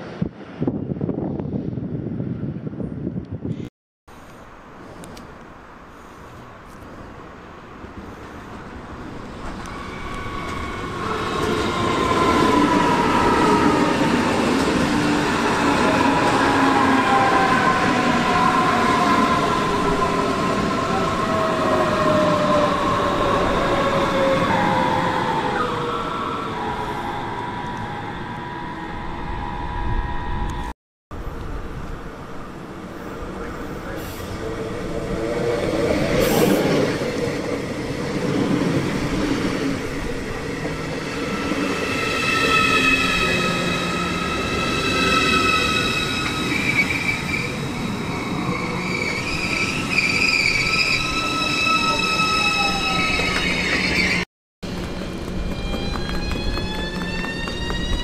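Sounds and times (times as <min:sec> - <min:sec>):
electric train passing with whine: 0:07.0 - 0:58.0
train rolling slowly: 0:31.2 - 0:58.0
high-pitched metallic squeal: 0:41.2 - 0:54.3.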